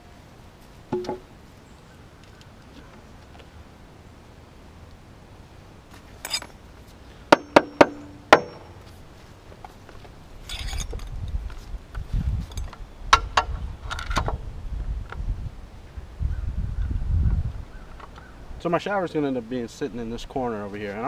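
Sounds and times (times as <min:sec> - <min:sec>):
hammer striking nail: 0:07.3 - 0:08.7.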